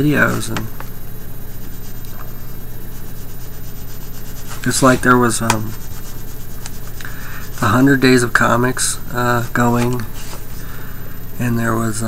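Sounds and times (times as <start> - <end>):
low electrical hum: 0.0 - 12.0
colored pencil rubbing on paper: 1.4 - 10.6.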